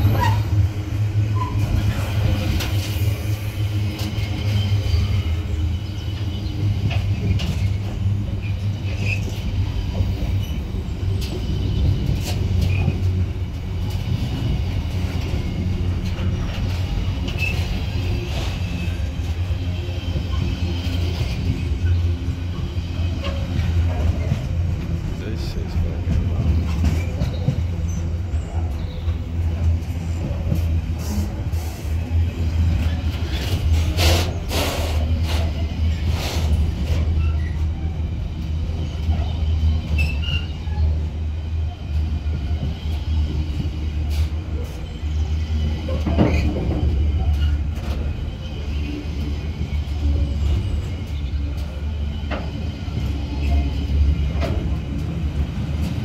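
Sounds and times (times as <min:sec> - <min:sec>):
train wheels rumbling on rails: 0:00.0 - 0:56.0.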